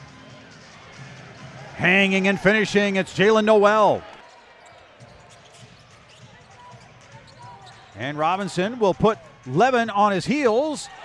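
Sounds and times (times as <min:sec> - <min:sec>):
faint arena background noise: 0:00.0 - 0:11.0.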